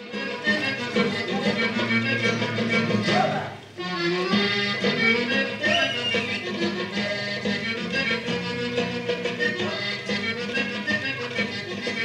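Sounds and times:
folk dance tune: 0.0s - 12.0s.

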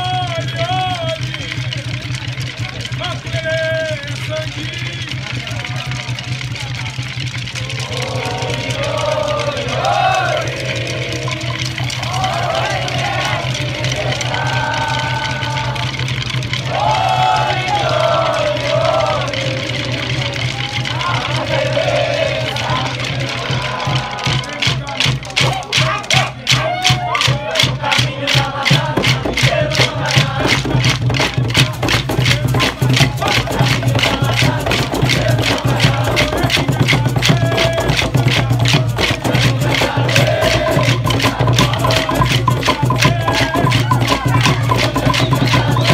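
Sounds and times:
group call-and-response chant: 0.0s - 45.9s
low accompaniment: 0.0s - 45.9s
wooden sticks struck together: 23.6s - 45.9s.

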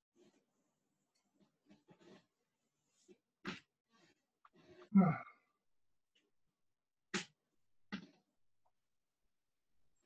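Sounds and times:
person sighing loudly: 4.9s - 5.4s.

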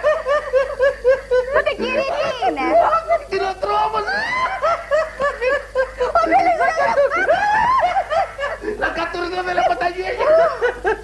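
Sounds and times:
men laughing: 0.0s - 11.0s.

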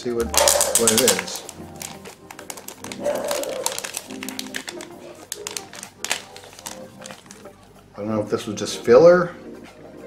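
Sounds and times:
soft background music: 0.0s - 10.0s
wrapper crinkling: 0.2s - 7.8s.

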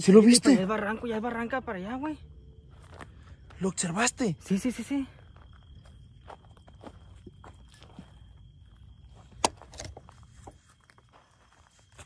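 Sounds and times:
footsteps through undergrowth: 10.0s - 12.0s.

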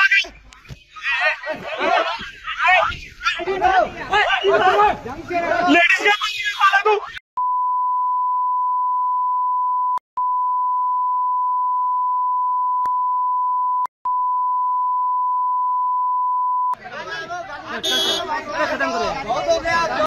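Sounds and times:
people arguing: 0.0s - 7.2s, 16.8s - 20.0s
censor beep tone: 7.4s - 16.8s.

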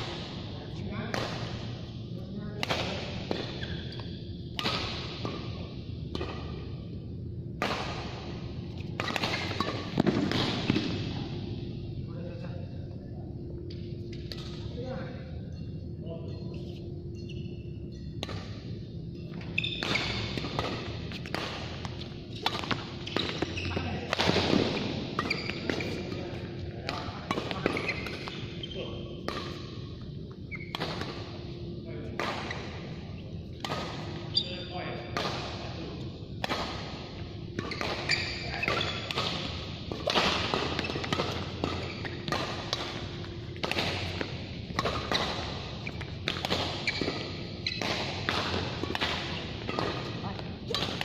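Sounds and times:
racket striking shuttlecock: 4.5s - 5.4s, 7.6s - 8.2s, 8.8s - 11.0s, 19.7s - 25.9s, 36.4s - 51.0s.

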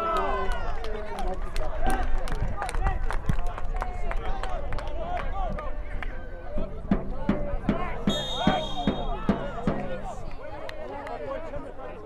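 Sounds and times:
people shouting: 7.8s - 10.2s.

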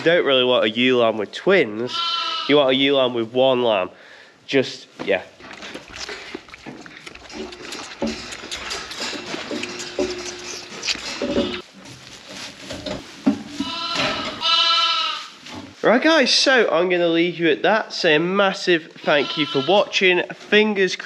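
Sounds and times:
lambs bleating high-pitched: 1.9s - 2.6s, 13.6s - 15.3s, 19.0s - 19.9s
sheep bleating: 1.9s - 2.6s, 13.6s - 15.3s, 19.0s - 19.9s.

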